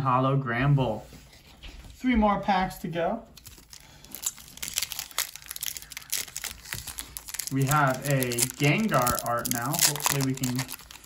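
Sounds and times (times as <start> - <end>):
foil wrapper crinkling and tearing: 3.4 - 11.0.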